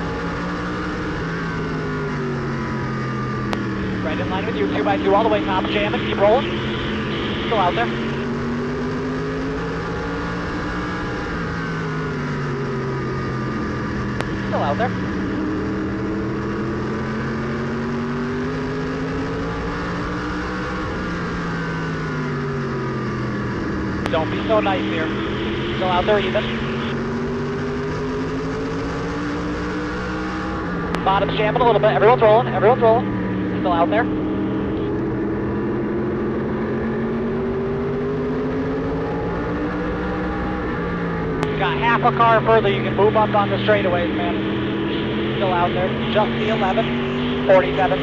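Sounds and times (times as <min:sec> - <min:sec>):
race car engine running: 0:00.0 - 0:48.0.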